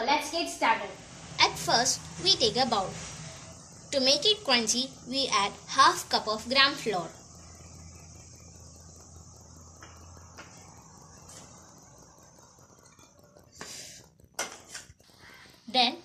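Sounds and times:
faint low hum: 0.0s - 16.0s
thin high hiss: 0.0s - 16.0s.

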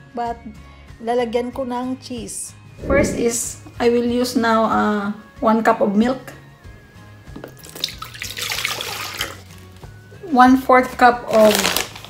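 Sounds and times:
background music: 0.0s - 12.0s
milk pouring into bowl: 7.5s - 9.4s.

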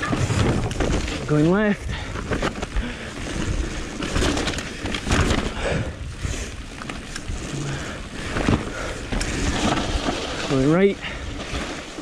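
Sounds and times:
bike knocking and rattling: 0.0s - 12.0s
bike tyres rolling over dirt: 0.0s - 12.0s.

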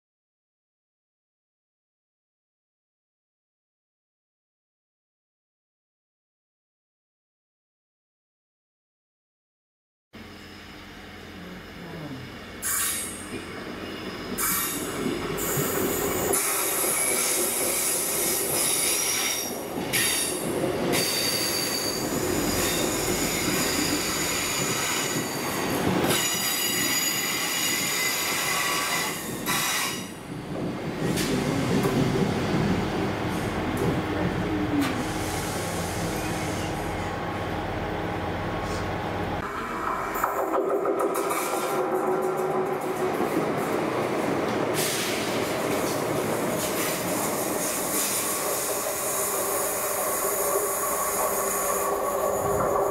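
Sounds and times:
train engine and wheel rumble: 10.2s - 52.9s
high wheel squeal: 21.0s - 30.1s.

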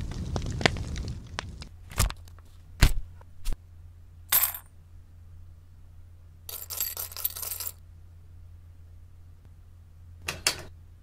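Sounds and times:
metal coins clinking: 4.3s - 4.7s, 6.5s - 7.8s.

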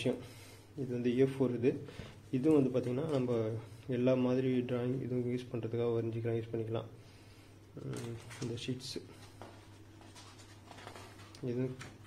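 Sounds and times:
paper pages rustling: 7.8s - 12.0s.

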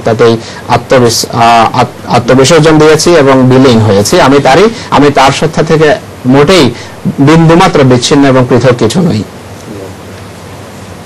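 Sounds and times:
man talking: 0.0s - 10.0s
old recording hiss: 0.0s - 11.0s.

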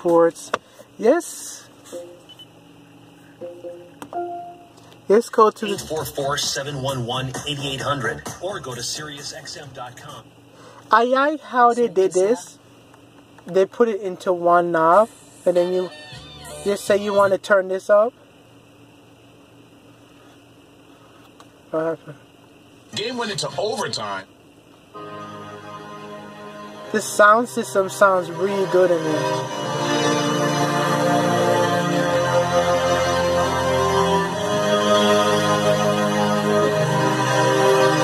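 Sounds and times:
faint steady cabin hum: 0.0s - 38.0s
short electronic tones: 1.9s - 2.6s, 3.4s - 4.9s.

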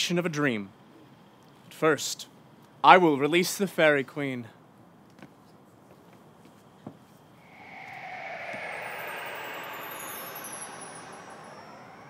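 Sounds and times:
faint falling whine: 7.4s - 12.0s
vehicle passing by: 7.4s - 12.0s.

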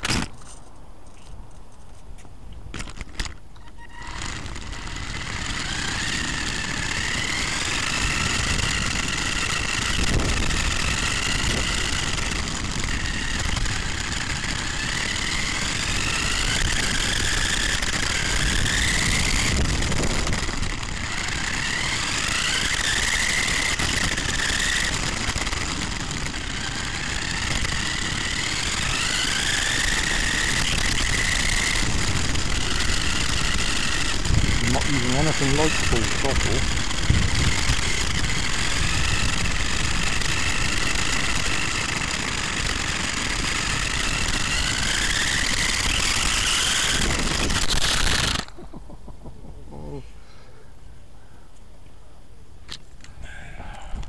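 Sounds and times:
toy truck electric motor whining: 2.8s - 48.6s
tyres rumbling on tarmac: 4.0s - 48.9s.

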